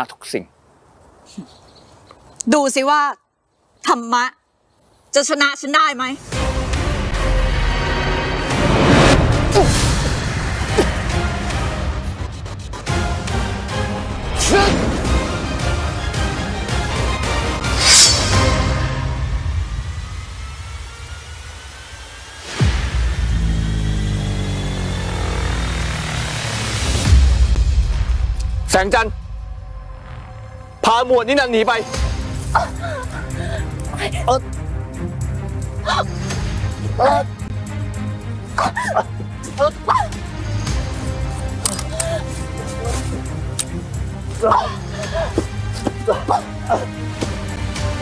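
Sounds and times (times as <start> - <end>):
background music: 5.8 - 23.4, 26.4 - 48.0
sharp hits: 17.6 - 20.2
heavy falling drone: 17.8 - 28.6.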